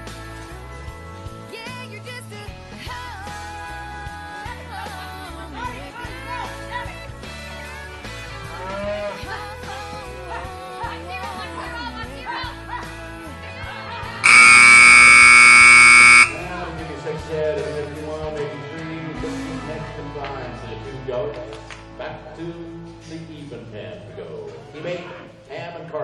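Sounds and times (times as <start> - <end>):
music with vocals: 0.0 - 14.3, 16.3 - 26.0
electronic arena buzzer: 14.2 - 16.4.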